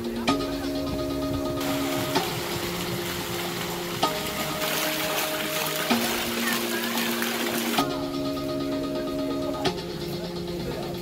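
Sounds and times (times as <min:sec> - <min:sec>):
background music sustained chords: 0:00.0 - 0:11.0
water pouring and splashing: 0:01.6 - 0:07.9.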